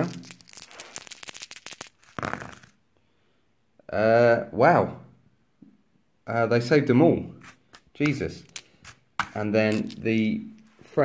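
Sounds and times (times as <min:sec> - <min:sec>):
dice clattering on a mat: 0:00.0 - 0:02.8, 0:07.7 - 0:10.7
dice rattling in the hand: 0:00.0 - 0:02.8, 0:08.4 - 0:10.2.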